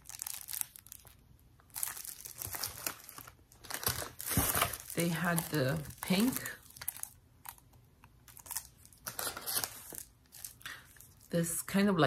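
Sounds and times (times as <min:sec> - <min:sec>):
plastic-wrapped mesh rolls crinkling: 0:00.0 - 0:07.6, 0:08.2 - 0:11.7.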